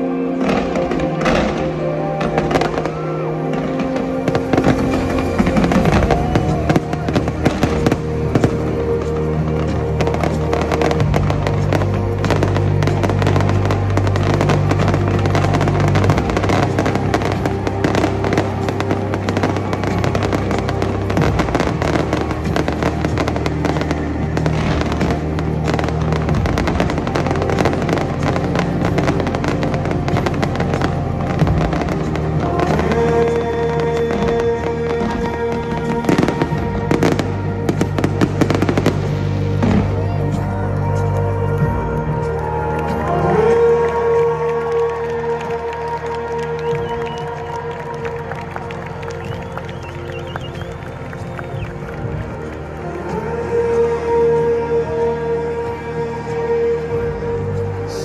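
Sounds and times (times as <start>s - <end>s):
fireworks bursting and crackling: 0.0s - 58.0s
loud music with held notes: 0.0s - 58.0s.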